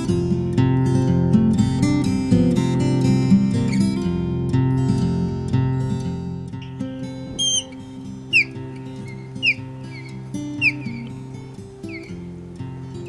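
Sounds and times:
acoustic guitar music: 0.0s - 13.0s
osprey whistled calls: 6.6s - 13.0s.

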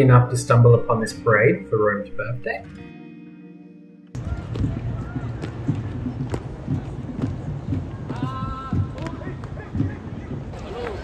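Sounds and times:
acoustic guitar music: 0.0s - 8.3s
marching thuds: 4.1s - 11.0s
crowd hubbub: 4.2s - 11.0s.

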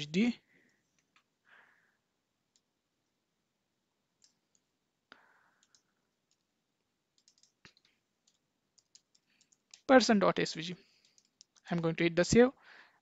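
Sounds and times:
computer keyboard keystrokes: 5.6s - 6.5s, 7.1s - 9.9s, 11.0s - 11.6s.

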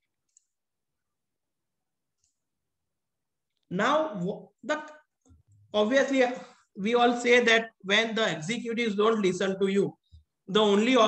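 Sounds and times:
man's voice: 5.8s - 11.0s.

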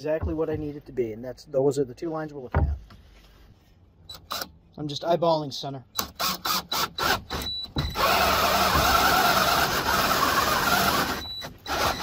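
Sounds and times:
drill boring into wood: 6.0s - 12.0s.

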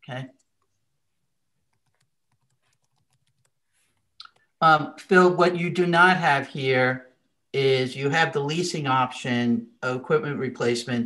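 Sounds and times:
typing on computer keyboard: 1.6s - 4.5s.

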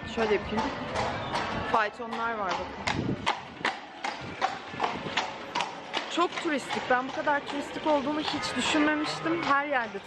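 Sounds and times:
hooves clip-clopping on cobblestones: 0.0s - 10.0s.

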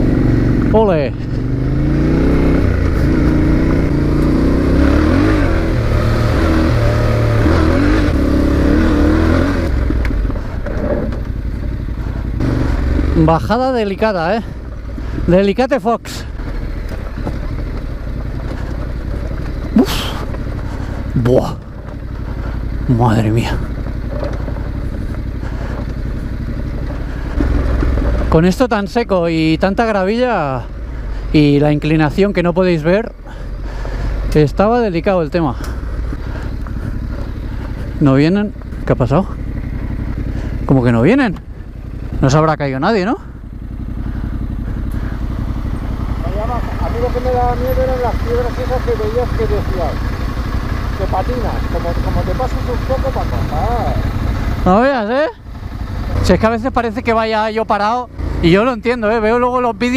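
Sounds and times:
motorcycle engine at low revs: 0.0s - 59.9s.

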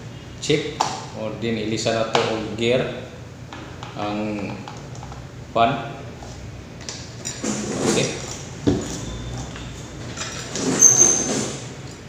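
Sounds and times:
faint fan hum: 0.0s - 12.0s.

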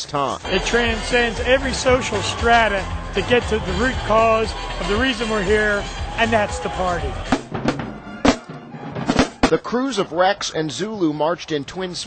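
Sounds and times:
marching band drum strokes: 0.4s - 9.8s.

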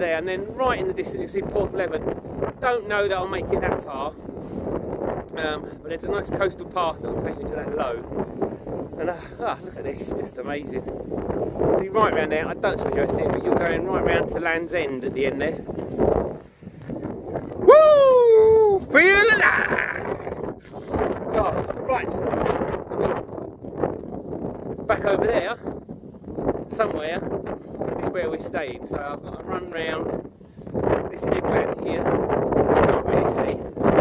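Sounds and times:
wind buffeting microphone: 0.0s - 34.0s
man yelling high-pitched: 17.6s - 20.3s.

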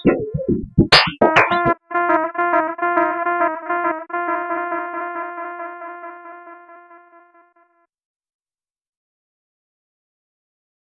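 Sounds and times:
synthesized keyboard note: 1.2s - 7.8s.

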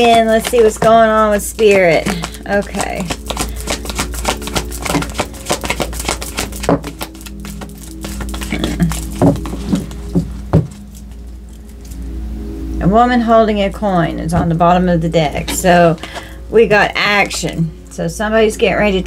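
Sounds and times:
cards being shuffled: 0.0s - 12.1s
soft background music: 0.0s - 19.0s.

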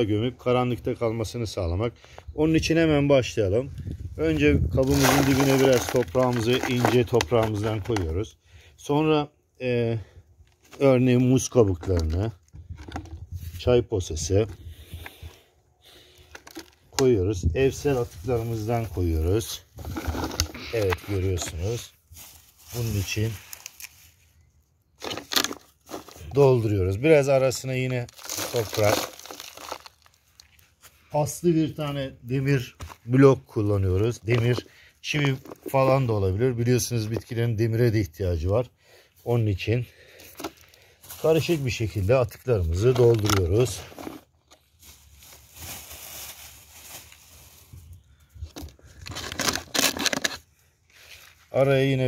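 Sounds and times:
kitchen scraps rustling: 4.8s - 8.0s, 17.9s - 24.2s, 25.0s - 26.4s, 28.0s - 30.6s, 42.7s - 47.7s
plastic bottle crinkling: 4.8s - 8.2s, 10.4s - 13.4s, 16.0s - 17.2s, 17.9s - 26.7s, 27.4s - 30.9s, 32.7s - 36.2s, 40.1s - 47.8s, 48.4s - 50.6s.

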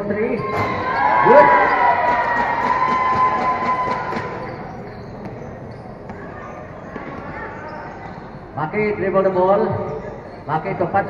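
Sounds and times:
crowd voices: 0.0s - 11.0s
basketball bouncing on concrete: 1.6s - 7.7s.

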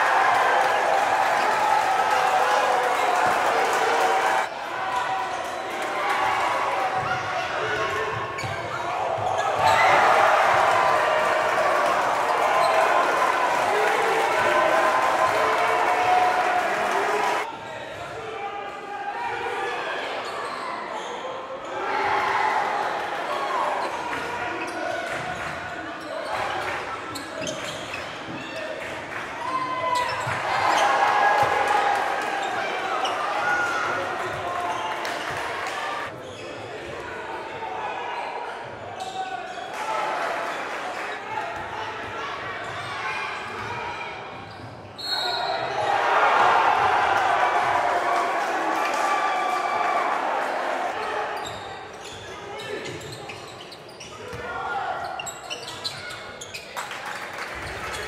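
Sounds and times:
voices of players and crowd: 0.0s - 58.0s.

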